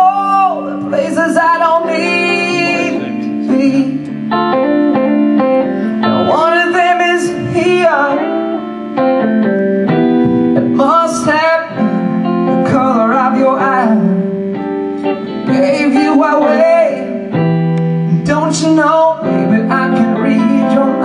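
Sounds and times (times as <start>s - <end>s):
drums: 0.0s - 21.0s
electric guitar: 0.0s - 21.0s
keyboard: 0.0s - 21.0s.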